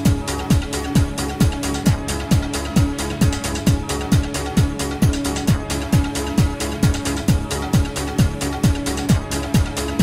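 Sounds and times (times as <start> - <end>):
kick drum: 0.0 - 10.0.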